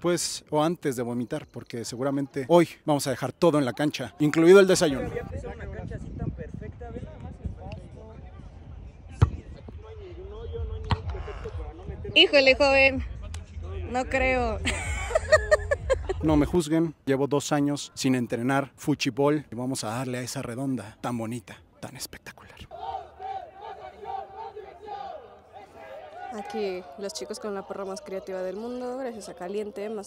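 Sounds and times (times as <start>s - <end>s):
football kicked on grass: 9.2s - 9.8s
men shouting and chanting: 22.7s - 30.0s.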